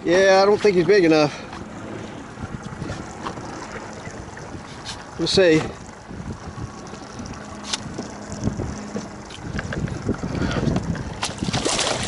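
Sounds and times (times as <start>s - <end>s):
low steady hum: 0.0s - 12.0s
water slapping boat hull: 0.0s - 12.0s
wind buffeting microphone: 0.0s - 12.0s.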